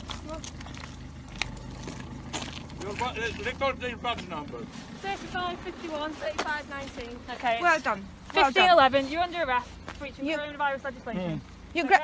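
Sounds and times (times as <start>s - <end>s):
steady low rumble: 0.0s - 10.4s.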